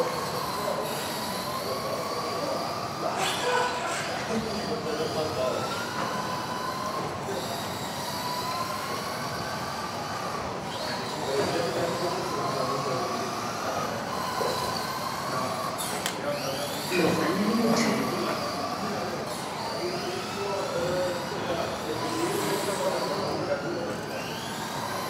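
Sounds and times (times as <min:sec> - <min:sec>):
electric rc car motors whining: 0:00.0 - 0:25.0.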